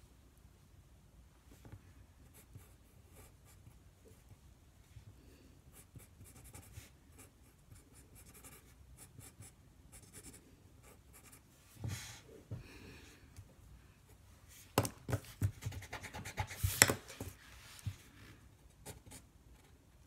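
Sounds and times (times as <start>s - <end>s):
pencil scratching on paper: 8.2s - 11.4s, 15.2s - 17.0s.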